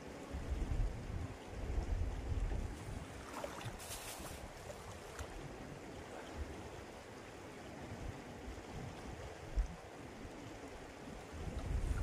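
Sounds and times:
stream rushing: 0.0 - 12.0
wind buffeting microphone: 11.2 - 12.0.

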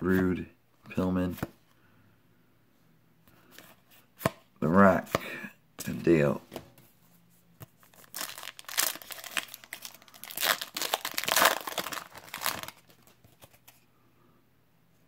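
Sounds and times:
foil wrapper tearing and crinkling: 7.9 - 13.1.

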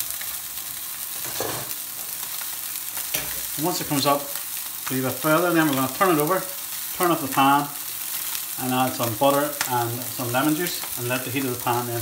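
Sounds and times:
fish sizzling in a frying pan: 0.0 - 12.0.

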